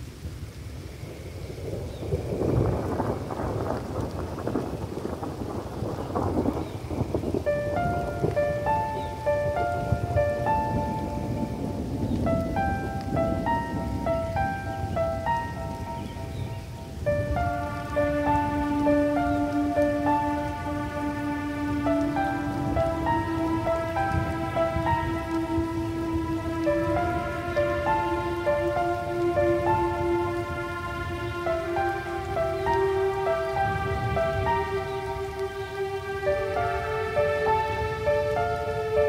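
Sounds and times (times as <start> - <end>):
rain pattering: 0.0 - 39.0
electronic instrumental music: 7.4 - 39.0.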